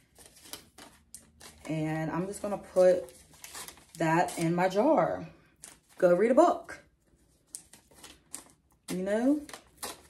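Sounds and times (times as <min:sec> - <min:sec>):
paper crinkling: 0:00.0 - 0:04.8, 0:07.1 - 0:10.0.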